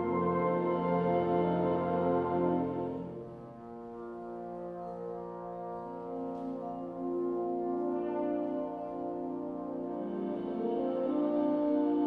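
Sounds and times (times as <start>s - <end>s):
brass band playing soft chords: 0.0s - 12.0s.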